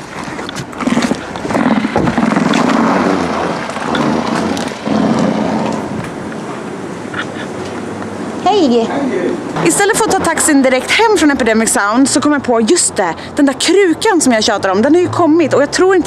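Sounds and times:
wind buffeting microphone: 0.0s - 12.5s
footsteps outdoors: 0.0s - 13.2s
street noise: 0.0s - 16.0s.

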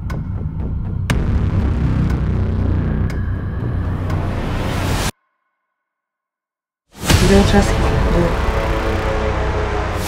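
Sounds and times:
low rumbling drone: 7.1s - 10.0s.

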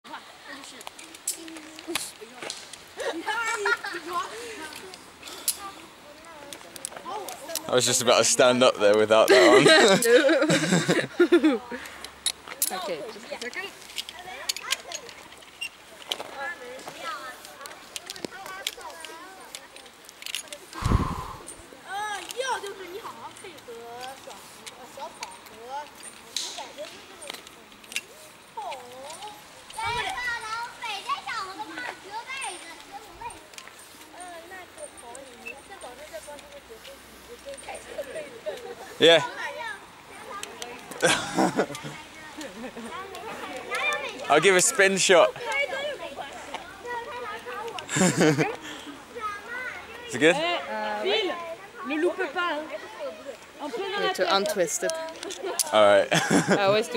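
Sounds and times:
children calling and shouting: 0.0s - 7.9s, 9.3s - 56.9s
people talking in background: 0.0s - 56.9s.

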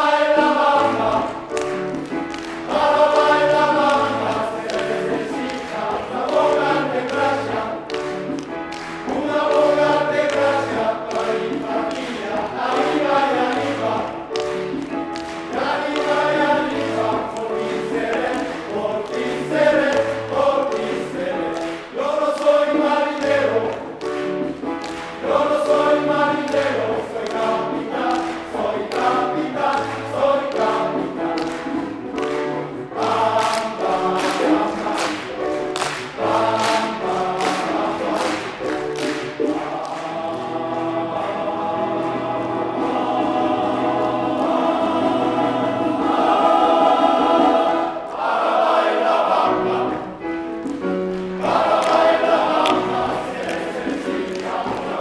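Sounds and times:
men's choir singing: 0.0s - 55.0s.

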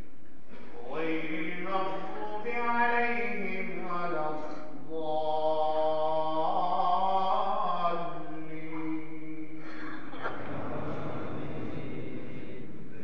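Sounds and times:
man chanting: 0.6s - 9.6s, 10.2s - 13.0s.

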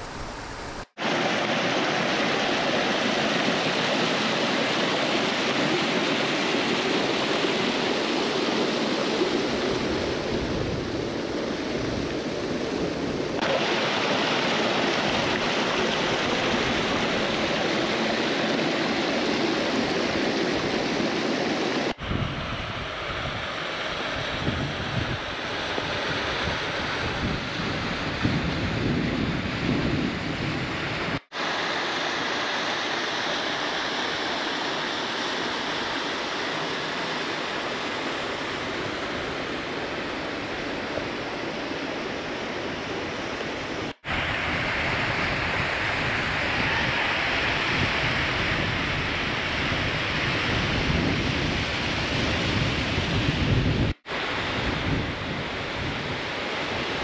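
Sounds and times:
creek water tumbling over boulders: 12.0s - 21.9s.

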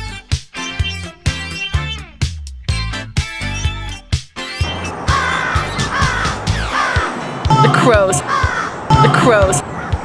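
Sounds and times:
crows cawing: 5.0s - 7.2s, 8.2s - 8.9s, 9.7s - 10.0s
music with thumping beat: 8.9s - 9.6s.

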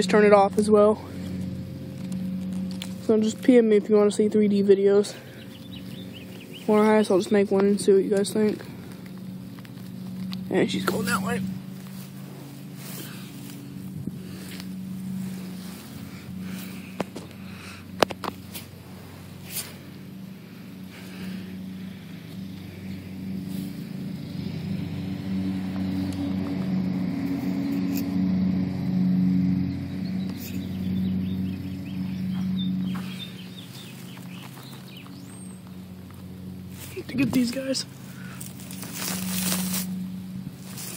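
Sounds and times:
lawn mower engine running: 0.0s - 40.9s.

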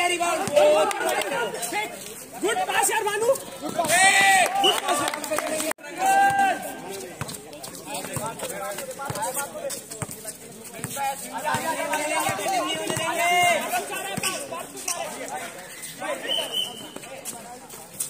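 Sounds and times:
players shouting: 0.0s - 7.0s, 11.3s - 17.0s
running footsteps on concrete: 0.2s - 15.9s.

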